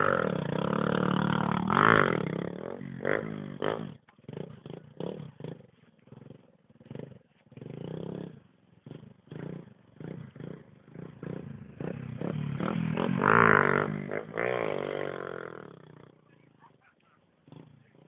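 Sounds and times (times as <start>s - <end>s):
small motorcycle engine revving: 0.0s - 18.0s.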